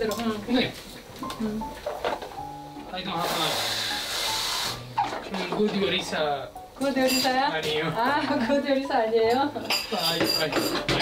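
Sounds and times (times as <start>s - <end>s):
background music with held notes: 0.0s - 11.0s
meat sizzling in a pot: 1.8s - 5.2s.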